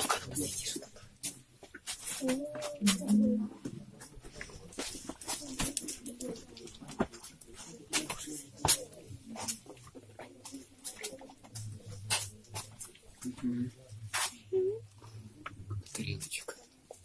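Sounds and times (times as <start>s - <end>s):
faint voices: 0.0s - 17.0s.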